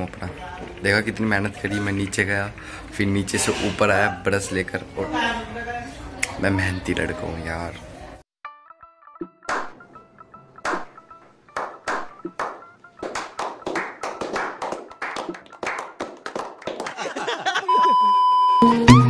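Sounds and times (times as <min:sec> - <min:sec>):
faint background music: 0:00.0 - 0:08.2
group clapping: 0:09.4 - 0:09.8, 0:10.6 - 0:17.6
steady beep-like tone: 0:17.7 - 0:18.8
loud music: 0:18.6 - 0:19.0.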